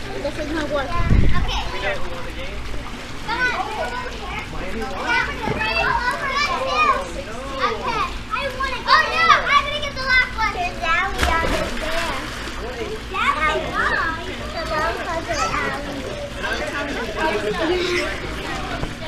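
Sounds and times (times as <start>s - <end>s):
children shouting and chattering: 0.0s - 2.5s, 3.1s - 19.0s
water splash: 11.1s - 12.7s.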